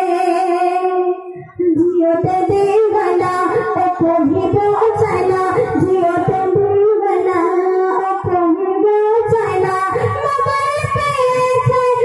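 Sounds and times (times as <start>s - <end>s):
girl singing into a microphone: 0.0s - 12.0s
low beats: 0.0s - 12.0s.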